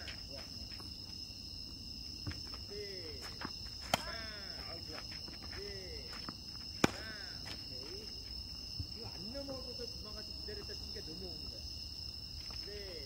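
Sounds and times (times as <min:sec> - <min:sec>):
racket striking tennis ball: 0:03.8 - 0:04.4, 0:06.8 - 0:07.5.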